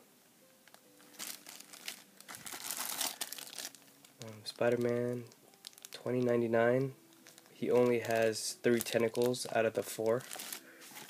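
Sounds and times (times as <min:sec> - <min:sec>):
plastic bags crinkling: 0:00.6 - 0:11.0.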